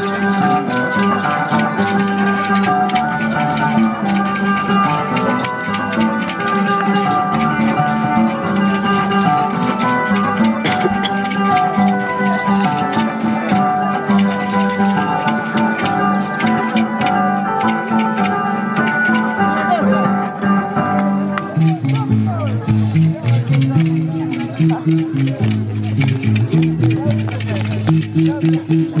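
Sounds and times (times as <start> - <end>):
folk dance music plucked strings: 0.0 - 29.0.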